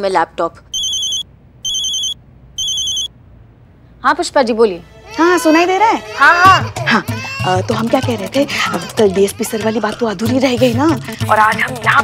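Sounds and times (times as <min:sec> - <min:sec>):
mobile phone ringtone: 0:00.8 - 0:03.1.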